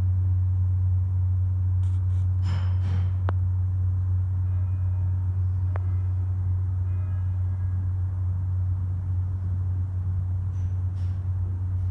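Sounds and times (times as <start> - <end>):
large bell humming: 4.1 - 10.9.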